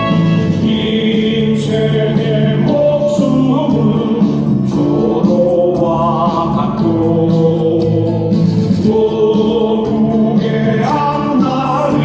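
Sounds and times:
amplified lead singers: 0.0 - 12.0
backing music with even beat: 0.0 - 12.0
crowd singing: 0.0 - 12.0.

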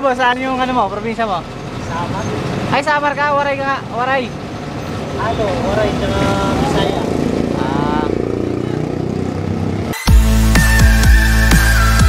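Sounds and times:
street traffic: 0.0 - 12.0
motorcycle engine running: 0.6 - 10.0.

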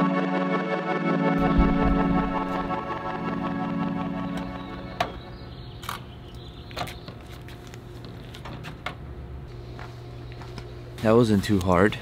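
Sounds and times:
organ keyboard music: 0.0 - 6.8
steady low hum: 1.4 - 12.0.

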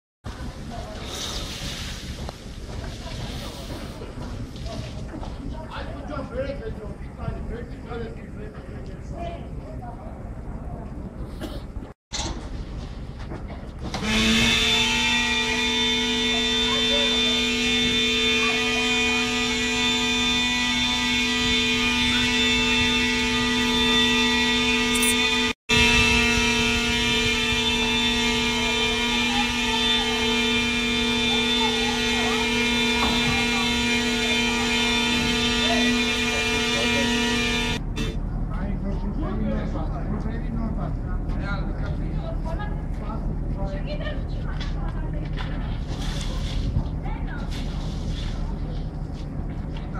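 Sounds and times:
street noise: 0.2 - 49.9
faint voices: 0.3 - 11.9, 28.4 - 49.9
car horn sounding: 14.0 - 38.2.

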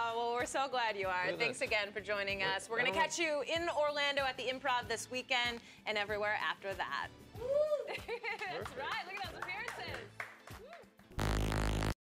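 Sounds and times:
buzzy music sting: 11.2 - 12.0.

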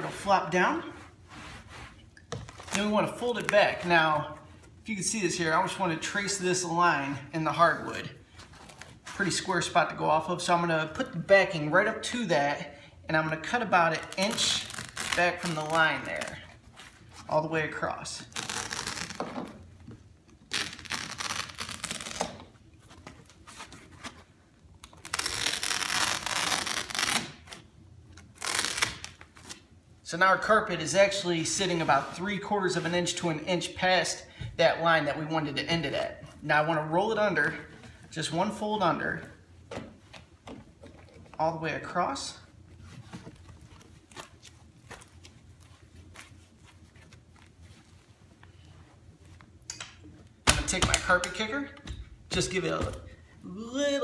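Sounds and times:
hands brushing carpet: 0.9 - 2.1.

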